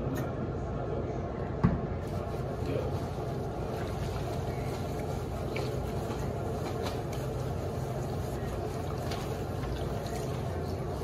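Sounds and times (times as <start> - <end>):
faint squishes: 2.0 - 11.0
wet fabric rubbed by hand: 2.0 - 11.0.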